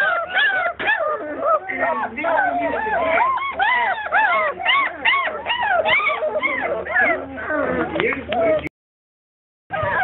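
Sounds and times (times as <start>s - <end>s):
puppies whining and yelping: 0.0s - 8.7s, 9.7s - 10.0s.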